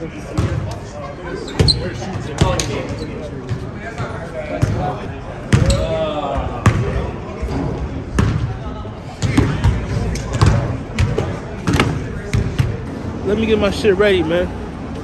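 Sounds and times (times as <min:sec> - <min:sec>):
basketballs bouncing on gym floor: 0:00.3 - 0:00.7, 0:01.5 - 0:07.0, 0:08.0 - 0:08.6, 0:09.2 - 0:12.8.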